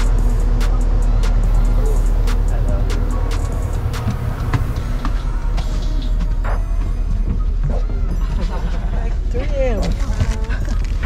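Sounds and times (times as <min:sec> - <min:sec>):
background music: 0:00.0 - 0:11.0
faint voices: 0:00.0 - 0:11.0
vehicle engine drone: 0:00.0 - 0:11.0.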